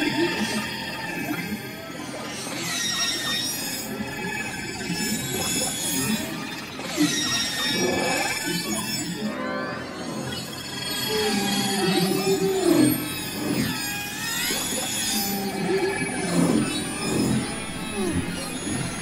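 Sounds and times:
electronic music with whale squeals: 0.1 - 19.0.

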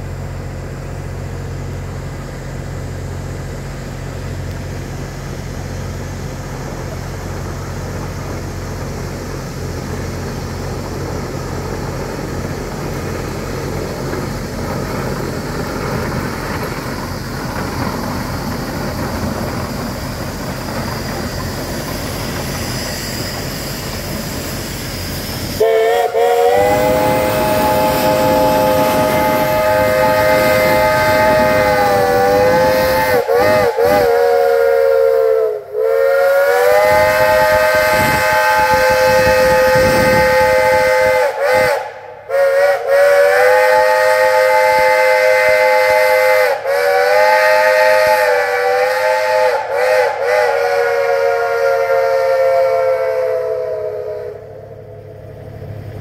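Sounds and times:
steam locomotive chime whistle: 19.8 - 55.1.

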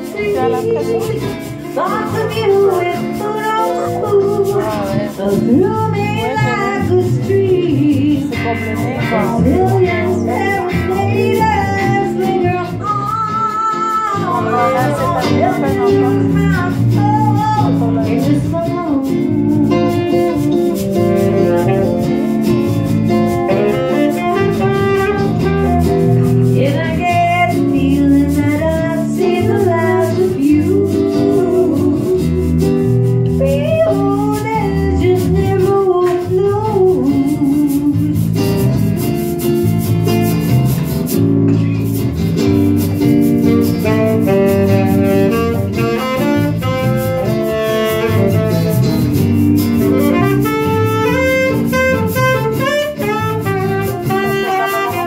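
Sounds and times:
saxophone melody: 0.0 - 7.4, 14.1 - 27.6, 43.0 - 55.0
guitar chords: 0.0 - 55.0.

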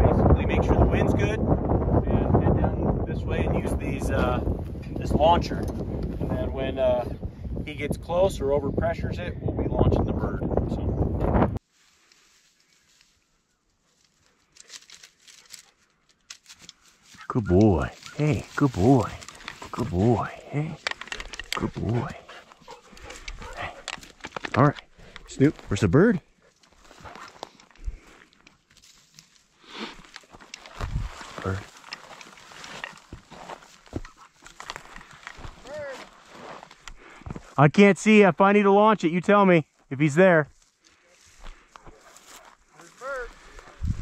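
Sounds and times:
rustling of dry grass: 11.6 - 37.5, 40.5 - 44.0
twigs snapping: 14.0 - 25.7, 26.6 - 35.7
person speaking a word: 17.3 - 20.8, 21.6 - 22.3, 35.6 - 36.1, 42.8 - 43.8.

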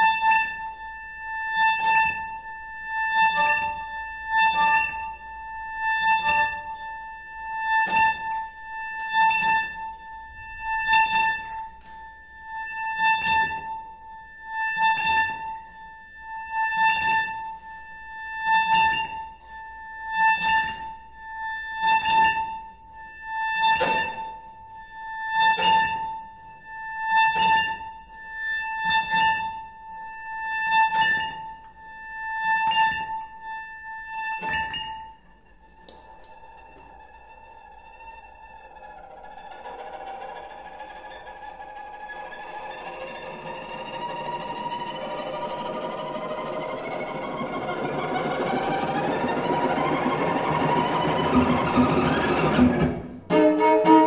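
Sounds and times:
cello: 0.0 - 54.0.

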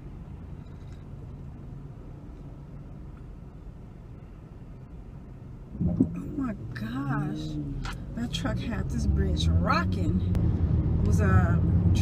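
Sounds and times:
faint hum: 0.0 - 8.5
traffic going by: 0.0 - 12.0.

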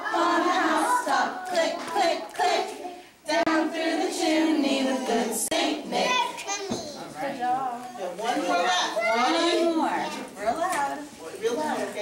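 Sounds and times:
young children talking: 6.0 - 7.2, 8.2 - 12.0.

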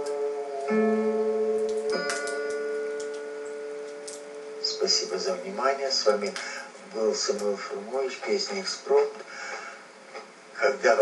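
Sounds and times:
acoustic guitar chord ringing: 0.0 - 5.7.

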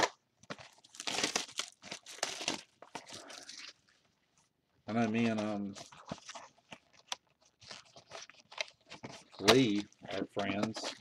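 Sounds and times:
plastic shrink wrap crinkling: 0.0 - 11.0.

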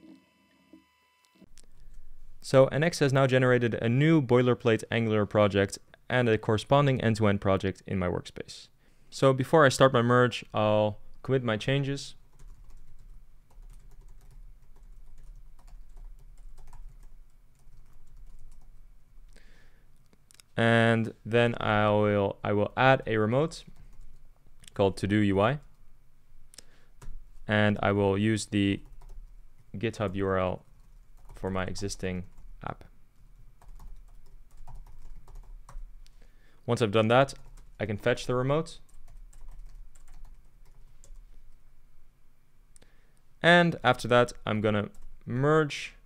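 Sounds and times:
keyboard typing: 12.3 - 18.8, 28.8 - 32.5, 33.2 - 35.9, 38.9 - 41.2.

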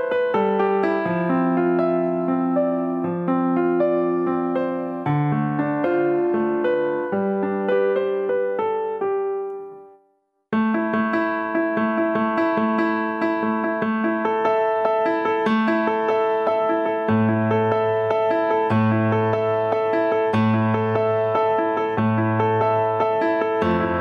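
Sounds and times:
piano notes repeating figure: 10.6 - 24.0.

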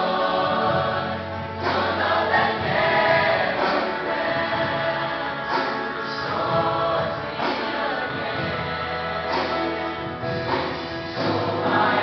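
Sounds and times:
mixed choir singing gospel song: 0.0 - 12.0.

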